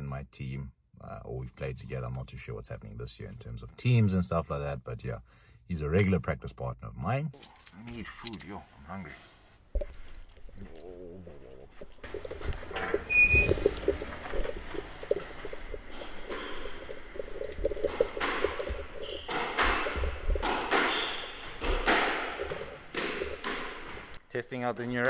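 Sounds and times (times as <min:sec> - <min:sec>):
squash ball hits echoing: 0:19.2 - 0:24.1.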